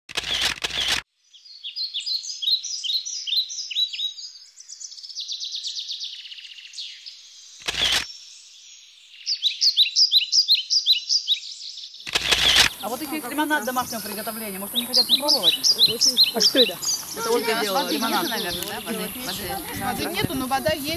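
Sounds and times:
camera shutter clicks: 0.1s - 1.0s, 7.6s - 8.1s, 12.0s - 12.8s
birds chirping: 1.2s - 20.9s.

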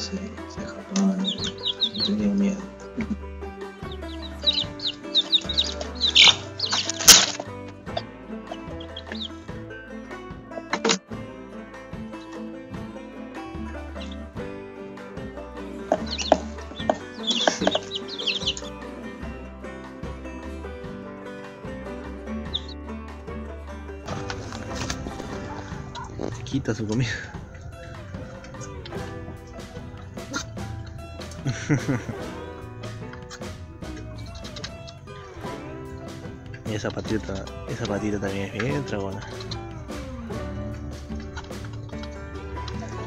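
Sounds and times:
background music: 0.0s - 43.0s
chicks peeping: 0.6s - 9.6s, 14.0s - 14.3s, 15.8s - 18.9s, 22.4s - 22.8s, 24.1s - 43.0s.

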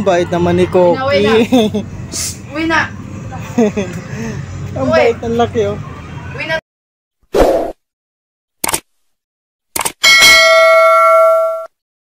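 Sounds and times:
bright bell chime: 10.0s - 11.7s.

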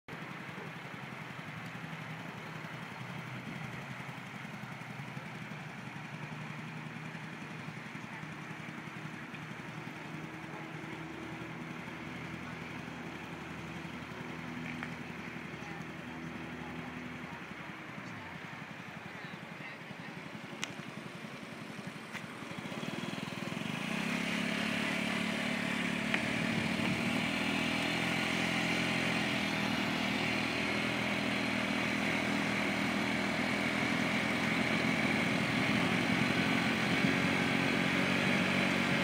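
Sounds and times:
scooter engine running: 0.1s - 39.0s
wind and road noise: 0.1s - 39.0s.

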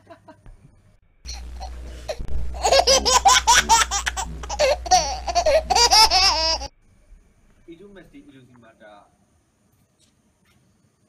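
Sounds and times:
steady low hum: 0.4s - 9.8s
high-pitched laughter: 1.3s - 6.7s.

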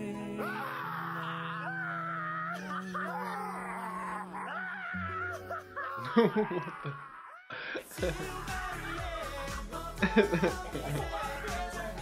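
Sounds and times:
voice wailing in mock-crying style: 0.4s - 9.4s
low bass and chords: 8.0s - 12.0s.

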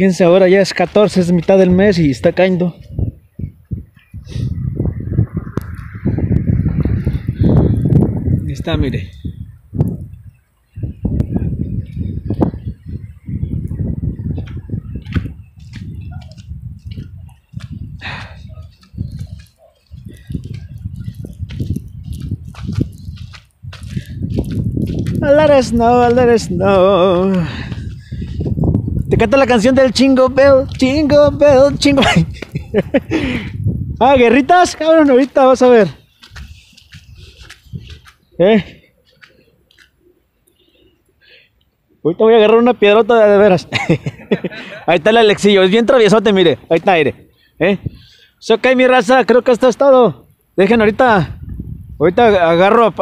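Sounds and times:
wind buffeting microphone: 0.0s - 40.0s, 43.2s - 48.2s, 50.3s - 53.0s
footsteps crunching in snow: 15.0s - 28.8s, 34.6s - 40.0s.

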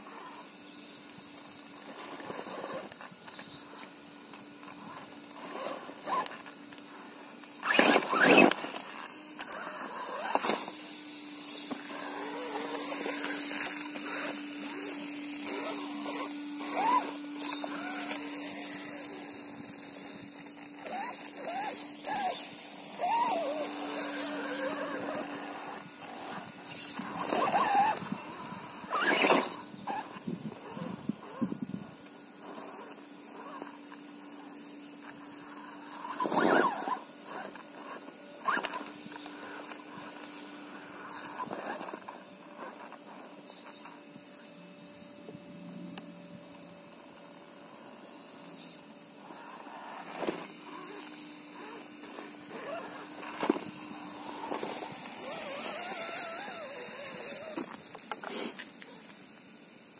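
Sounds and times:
electric motor and gears whining: 0.0s - 59.9s
short high squeaks: 4.6s - 6.6s, 7.6s - 31.7s, 34.6s - 45.1s, 48.2s - 59.0s.

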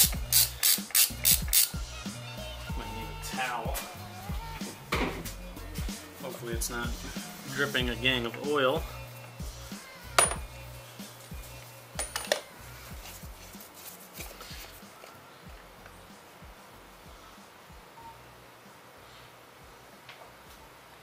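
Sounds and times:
metallic clinks of steel socket: 12.0s - 12.4s.

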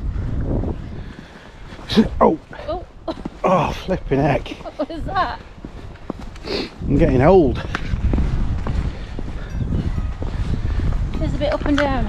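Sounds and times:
wind rumbling on microphone: 0.0s - 12.0s
footstep clicks: 4.4s - 12.0s.

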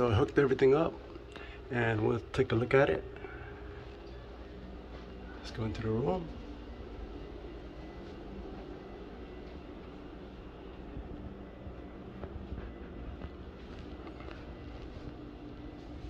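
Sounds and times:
ceiling fan motor hum: 0.0s - 16.0s.

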